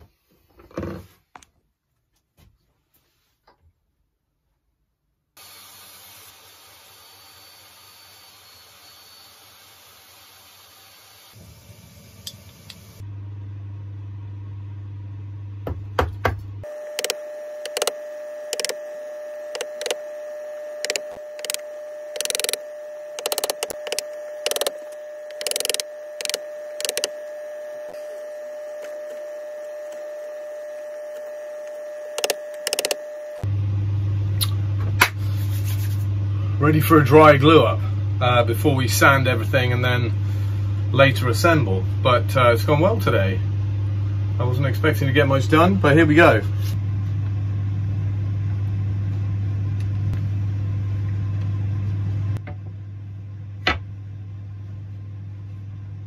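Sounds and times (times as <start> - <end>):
low hum: 11.4 - 15.6, 16.5 - 44.9
steady tone: 16.6 - 33.4.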